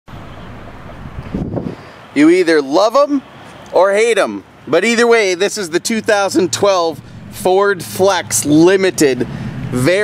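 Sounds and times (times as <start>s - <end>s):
wind buffeting microphone: 0.1s - 2.0s, 6.1s - 10.0s.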